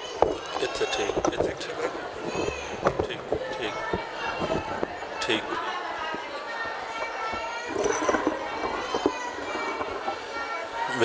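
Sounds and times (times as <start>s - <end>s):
microphone stand being handled: 0.0s - 6.3s, 7.0s - 10.2s
faint background voices: 0.0s - 11.0s.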